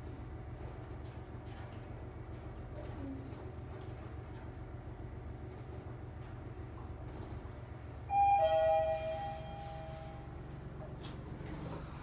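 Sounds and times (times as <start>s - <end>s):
elevator running hum: 0.0s - 12.0s
two-tone elevator chime: 8.1s - 10.3s.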